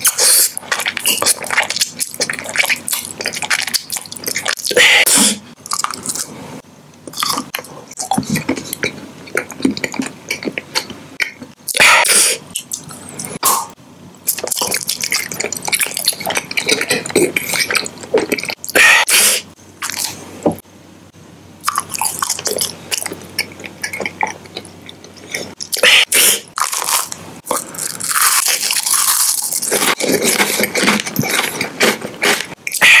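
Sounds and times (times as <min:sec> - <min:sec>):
noisy mouth bursts: 0:25.8 - 0:26.5.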